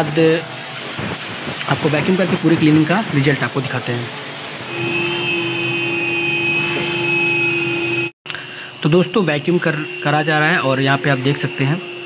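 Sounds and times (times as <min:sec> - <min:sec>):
vacuum cleaner whining: 0:04.1 - 0:12.0.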